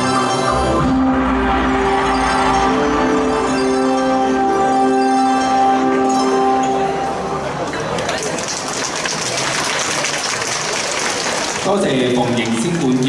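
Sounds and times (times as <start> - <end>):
music: 0.0 - 8.6
audience applauding: 7.6 - 13.0
man speaking: 11.6 - 13.0.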